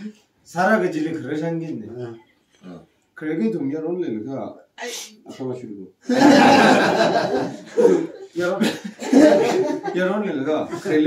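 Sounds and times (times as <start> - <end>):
group laughing loudly: 6.1 - 11.0
person speaking: 7.4 - 11.0.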